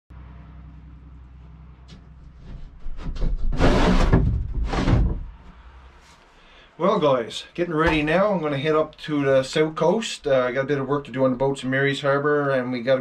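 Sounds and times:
steady low hum: 0.1s - 11.8s
wooden door scraping: 1.9s - 5.6s.

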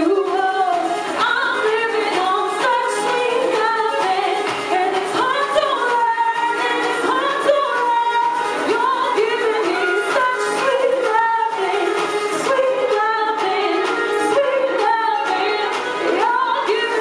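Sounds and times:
instrumental pop music: 0.0s - 17.0s
person singing sliding melody: 0.0s - 17.0s.

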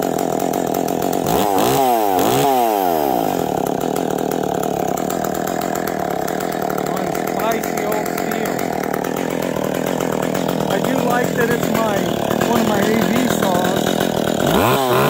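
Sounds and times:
chainsaw idling and revving: 0.0s - 15.0s.

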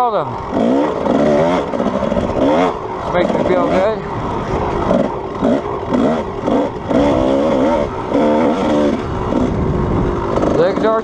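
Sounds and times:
two-stroke motorcycle engine revving: 0.0s - 11.0s.

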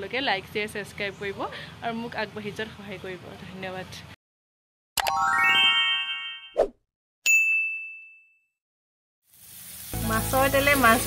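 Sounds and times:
high bell ding: 7.3s - 8.5s.

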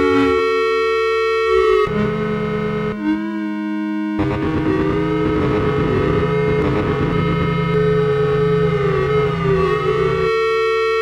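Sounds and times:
buzzing low drone: 0.0s - 11.0s
electronic held note: 0.0s - 11.0s.

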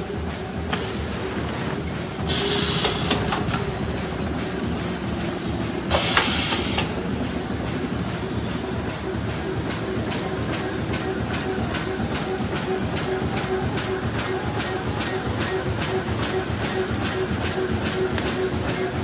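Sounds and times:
machine hissing: 0.0s - 19.0s
machine running: 0.0s - 19.0s
machine clicks: 2.2s - 8.2s.

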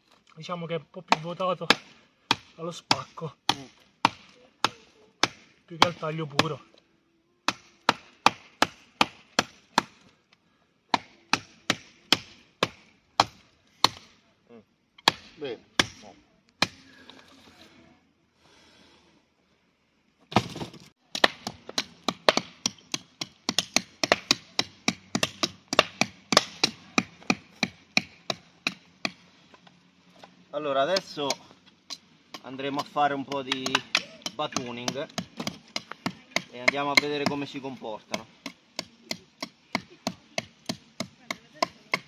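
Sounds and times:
knife chopping into wood: 20.3s - 29.2s, 32.3s - 37.5s.

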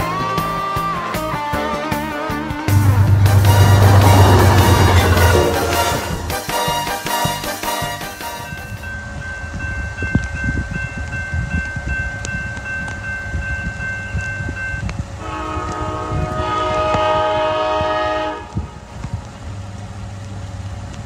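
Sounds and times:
low rumble: 2.7s - 6.9s
locomotive air horn blasts: 2.7s - 8.6s, 15.2s - 18.8s.

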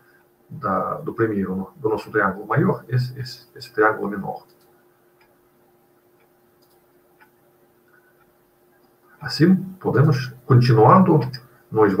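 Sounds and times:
small clicks: 4.4s - 5.3s, 6.2s - 9.0s.

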